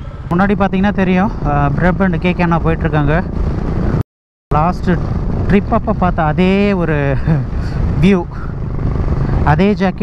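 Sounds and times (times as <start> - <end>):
motorcycle rumble: 0.0 - 10.0
wind noise: 0.0 - 10.0
man talking close to microphone: 0.3 - 3.3, 4.5 - 8.5, 9.4 - 10.0.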